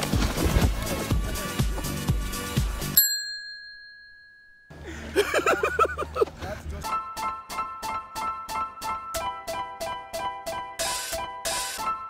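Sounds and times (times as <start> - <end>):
music: 0.0 - 3.0, 5.2 - 12.0
bright bell-like ding: 3.0 - 4.8.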